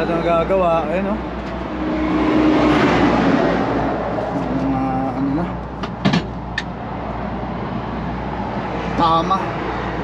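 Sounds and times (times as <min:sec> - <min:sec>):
vehicle passing on highway: 0:00.2 - 0:10.0.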